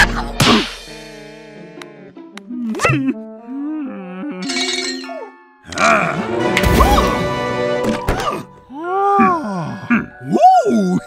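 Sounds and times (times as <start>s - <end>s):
background music: 0.0s - 11.0s
cartoon character moaning: 8.7s - 11.0s.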